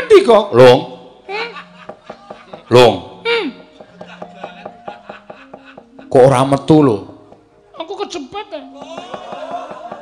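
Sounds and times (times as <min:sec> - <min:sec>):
mallet rapping on wooden chest: 0:01.8 - 0:02.8, 0:03.7 - 0:06.2, 0:08.7 - 0:10.0.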